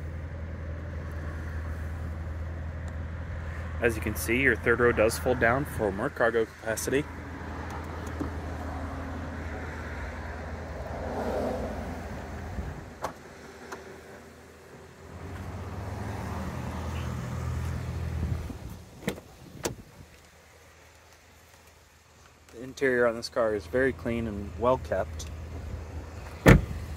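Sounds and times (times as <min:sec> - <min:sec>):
low car rumble: 0:00.0 - 0:26.9
car door clicking open: 0:19.0 - 0:19.9, 0:26.3 - 0:26.8.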